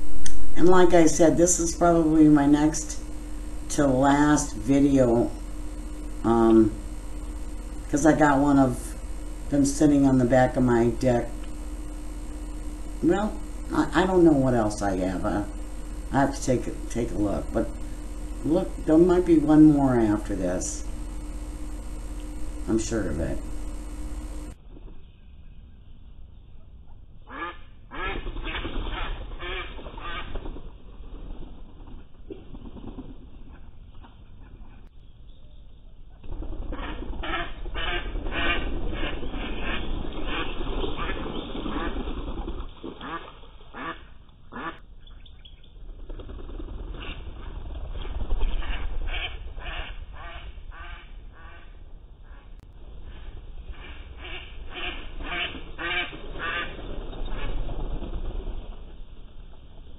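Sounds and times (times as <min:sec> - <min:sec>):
ducks quacking: 0:27.3 - 0:30.3, 0:36.7 - 0:42.1, 0:43.0 - 0:44.8, 0:48.4 - 0:57.6.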